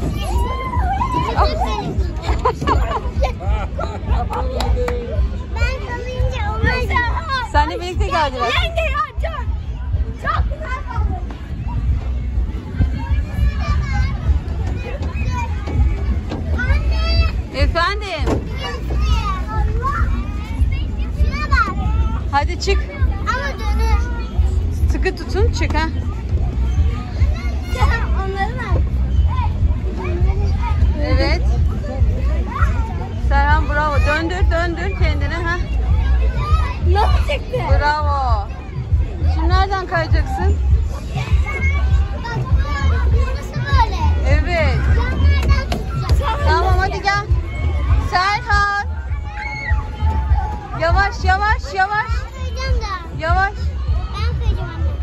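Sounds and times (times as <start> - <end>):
children chattering and shouting: 0.0 - 55.0
loud music with heavy bass: 46.2 - 49.0.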